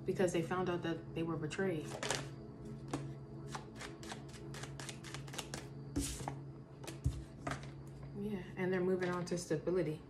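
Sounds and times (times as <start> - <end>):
cards being shuffled: 1.9 - 2.3, 2.9 - 7.7.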